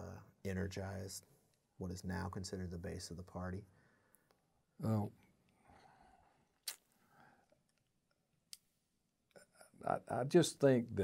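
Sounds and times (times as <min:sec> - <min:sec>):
man speaking: 0:00.0 - 0:03.7, 0:04.8 - 0:05.2, 0:09.7 - 0:11.0
faint breathing: 0:03.7 - 0:04.5, 0:05.6 - 0:07.6
mouth click: 0:06.6 - 0:06.9.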